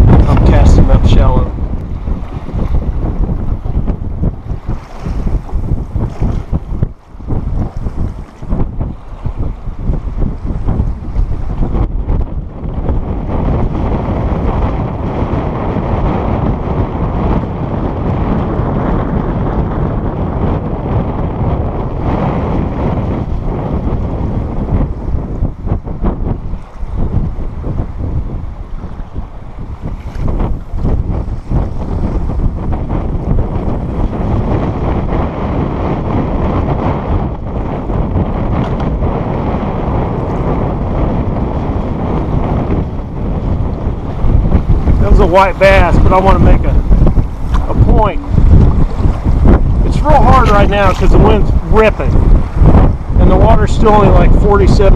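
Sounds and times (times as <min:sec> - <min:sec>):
wind buffeting microphone: 0:00.0 - 0:54.9.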